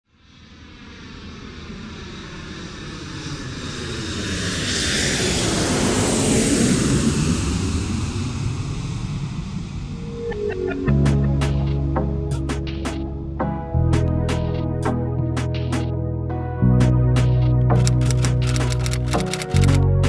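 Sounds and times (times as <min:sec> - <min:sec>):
cargo aircraft jet engines: 0:00.2 - 0:11.1.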